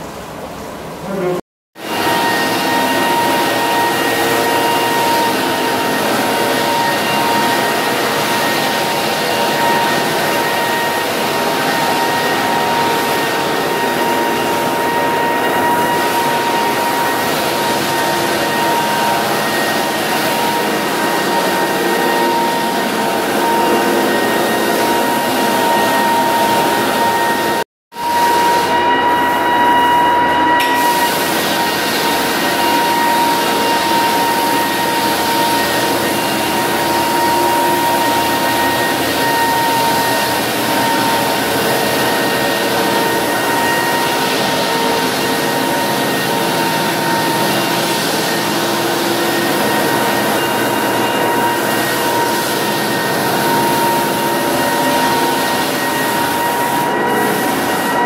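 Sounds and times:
floor sander grinding: 1.0s - 58.0s.

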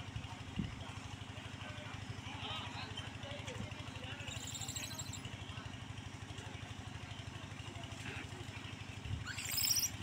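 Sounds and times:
engine idling: 0.0s - 10.0s.

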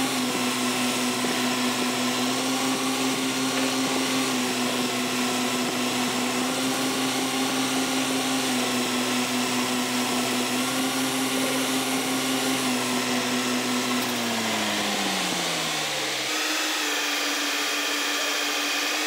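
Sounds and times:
metal lathe motor whine: 0.0s - 19.0s.

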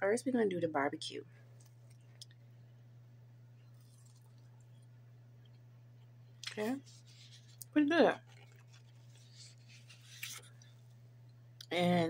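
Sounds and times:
low steady hum: 0.0s - 12.0s
faint scratchy rustles: 6.6s - 7.6s, 8.2s - 10.8s.

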